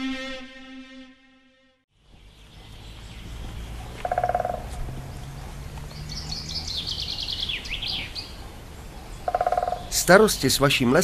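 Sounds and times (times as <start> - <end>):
birds singing: 1.9 - 11.0.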